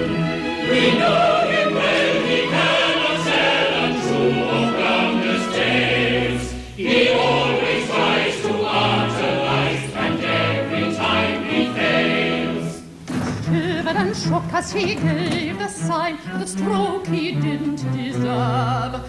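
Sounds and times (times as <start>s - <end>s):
chorus singing: 0.0s - 14.0s.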